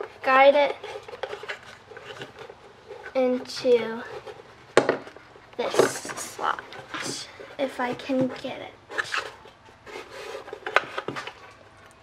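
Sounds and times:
hands tapping and scraping wood: 0:00.0 - 0:12.0.

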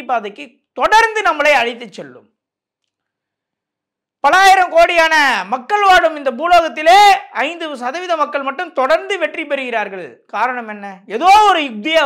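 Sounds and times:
man speaking: 0:00.0 - 0:02.3, 0:04.2 - 0:12.0.

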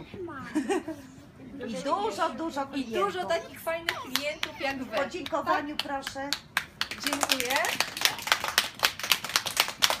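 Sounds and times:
children clapping in rhythm: 0:03.8 - 0:10.0.

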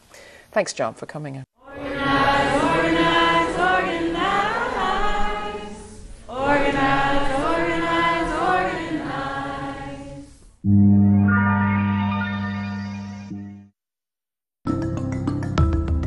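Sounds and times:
group of voices singing: 0:01.6 - 0:10.4.

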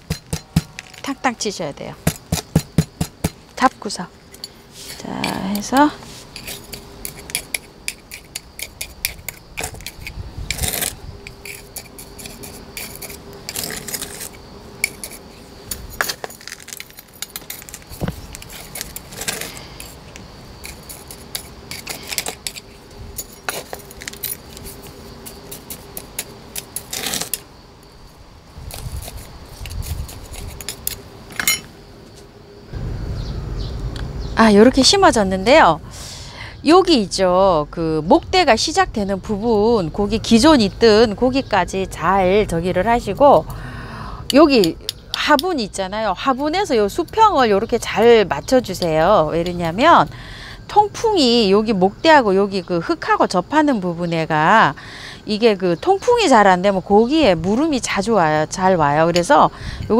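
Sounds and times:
metal tool scraping in soil: 0:00.0 - 0:03.4, 0:04.2 - 0:27.5, 0:28.6 - 0:32.2.

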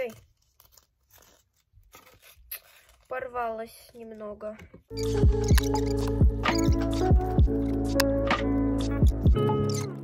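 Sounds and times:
thin sheet tearing: 0:00.0 - 0:03.3
plastic wrap crinkling: 0:00.0 - 0:03.6.

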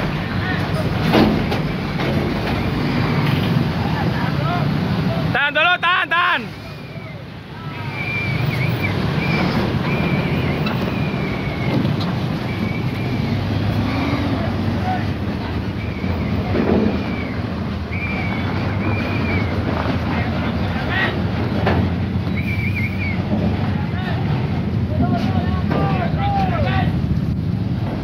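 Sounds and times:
truck diesel engine rumbling: 0:00.0 - 0:28.0.

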